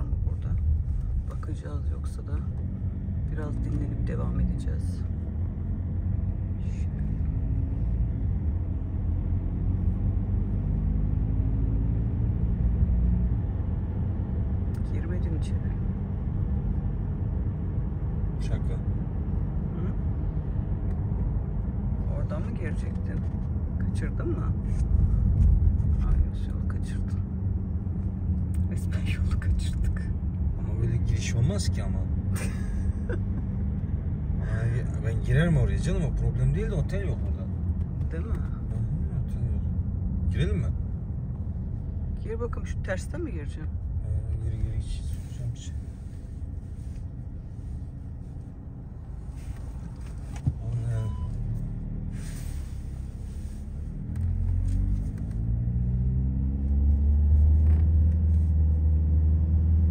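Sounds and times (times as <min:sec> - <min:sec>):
car cabin road and engine rumble: 0:00.0 - 0:59.9.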